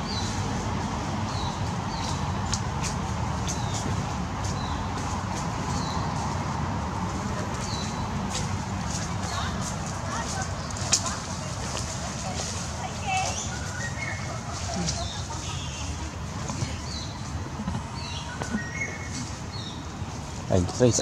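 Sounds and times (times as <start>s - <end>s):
dry leaves crackling: 0.0s - 20.4s
bird chirps: 13.2s - 16.0s, 17.9s - 19.9s.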